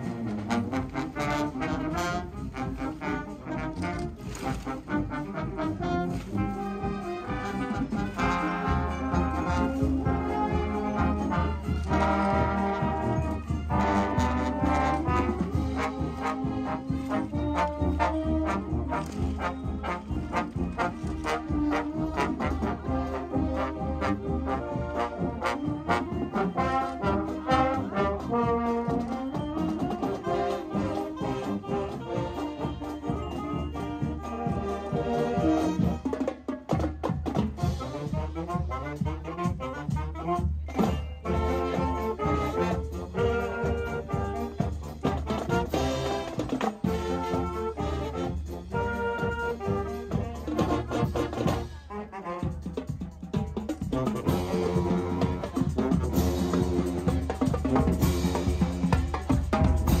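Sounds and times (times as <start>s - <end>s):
brass instruments playing tune: 0.0s - 60.0s
drum line: 0.0s - 60.0s.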